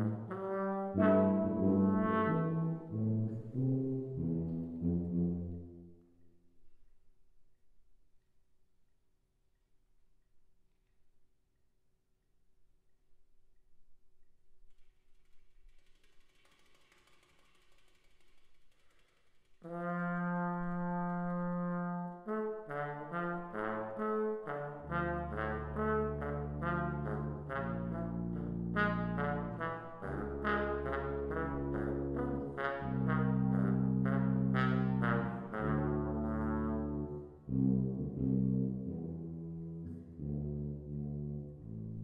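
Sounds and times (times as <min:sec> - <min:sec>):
brass ensemble playing low chords: 0:00.0 - 0:06.0, 0:19.7 - 0:42.0.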